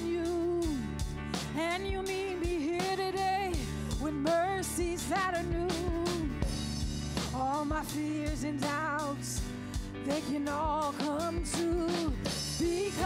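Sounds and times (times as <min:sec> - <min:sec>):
woman singing: 0:00.0 - 0:06.6, 0:07.3 - 0:13.0
drum kit steady beat: 0:00.0 - 0:13.0
keyboard: 0:00.0 - 0:13.0.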